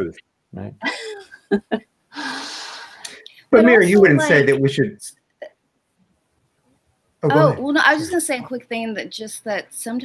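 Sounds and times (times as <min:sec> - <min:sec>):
person speaking: 0:00.0 - 0:05.1, 0:07.2 - 0:09.0
soft vocal sound: 0:02.2 - 0:04.9, 0:07.2 - 0:07.6.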